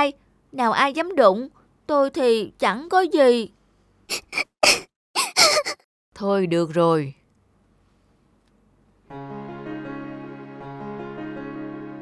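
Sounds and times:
cartoon voice sobbing: 4.1s - 5.8s.

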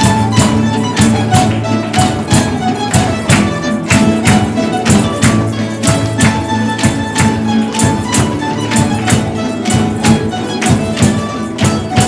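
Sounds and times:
guitars and lutes playing: 0.0s - 12.0s
hand percussion beat: 0.0s - 12.0s.

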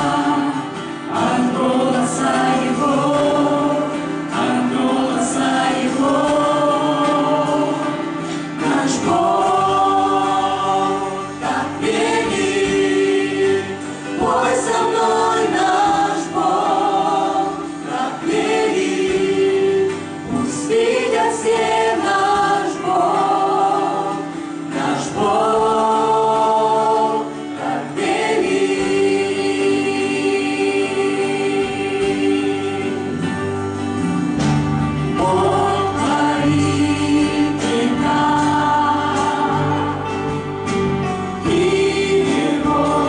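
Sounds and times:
choir singing worship song: 0.0s - 43.0s.

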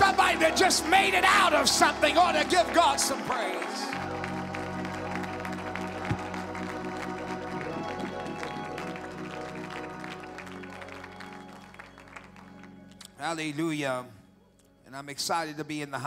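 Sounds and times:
congregation clapping and cheering: 0.0s - 13.6s
church praise music: 0.0s - 16.0s.

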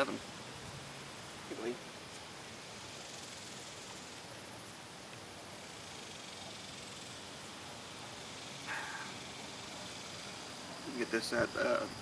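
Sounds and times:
low outdoor hiss: 0.0s - 12.0s.

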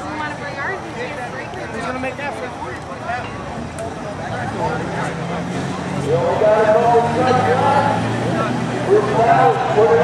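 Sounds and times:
diesel engine idling: 0.0s - 10.0s
spectators talking: 0.0s - 10.0s.

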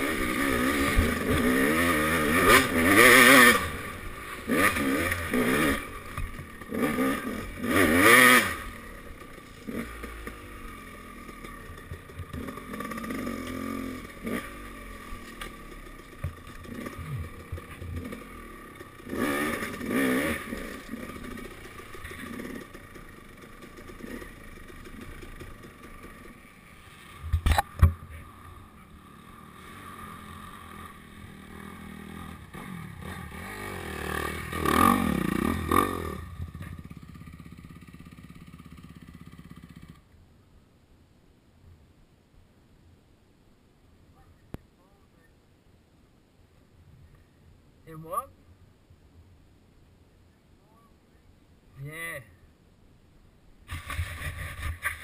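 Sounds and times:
dirt bike engine revving: 0.0s - 40.0s.

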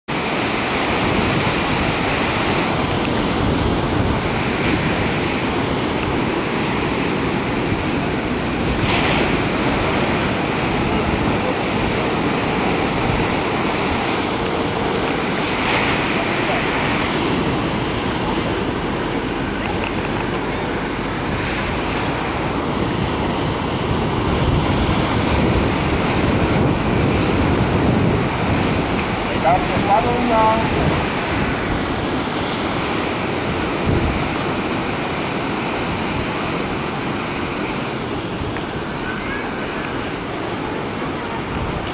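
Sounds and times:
ocean surf breaking on beach: 0.1s - 41.9s
wind buffeting microphone: 0.1s - 41.9s.

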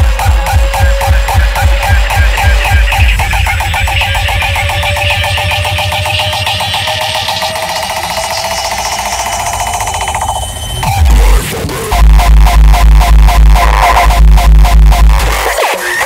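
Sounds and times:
pounding kick drum: 0.0s - 8.2s, 10.8s - 15.4s
rising noise sweep: 0.0s - 14.9s
rapid synth stabs: 0.0s - 16.0s.

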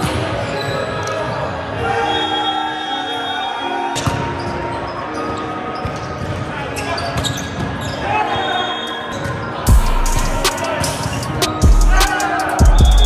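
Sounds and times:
scattered voices: 8.0s - 13.0s.

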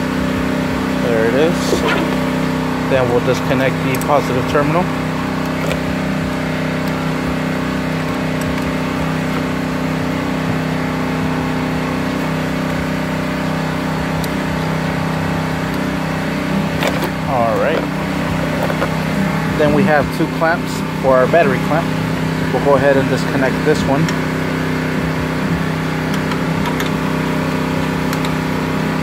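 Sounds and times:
machine humming: 0.6s - 7.4s, 14.8s - 29.0s.

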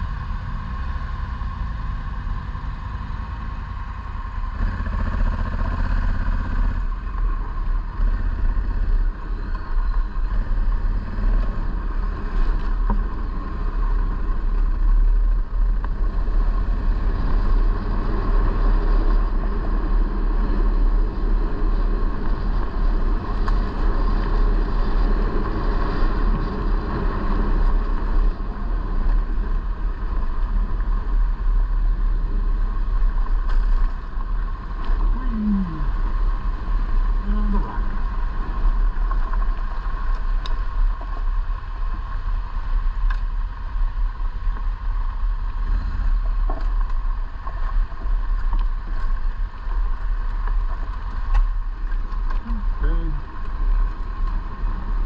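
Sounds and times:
vehicle engine rumbling: 0.0s - 55.0s.

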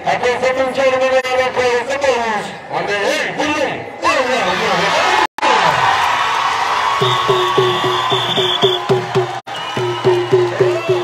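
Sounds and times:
man speaking into a microphone: 0.0s - 5.0s.

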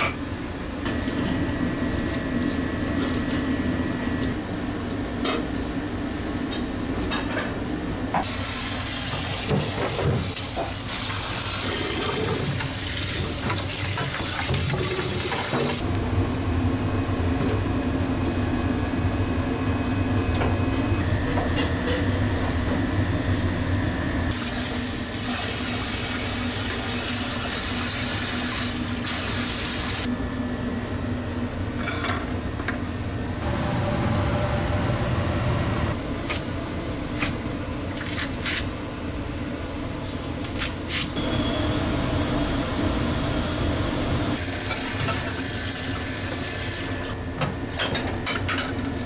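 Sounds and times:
kitchen equipment humming: 0.0s - 49.0s
tap water running: 8.2s - 15.8s, 24.3s - 30.1s, 44.4s - 47.0s.

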